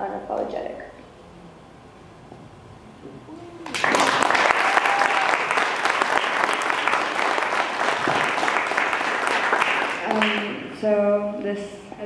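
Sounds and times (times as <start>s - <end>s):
woman speaking: 0.0s - 1.0s, 10.0s - 12.0s
audience applause: 3.6s - 10.6s.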